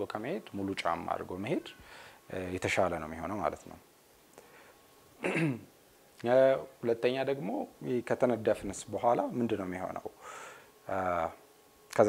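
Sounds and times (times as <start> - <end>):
man speaking: 0.0 - 3.9, 6.2 - 10.2, 10.9 - 12.0
man clearing throat: 5.2 - 5.7.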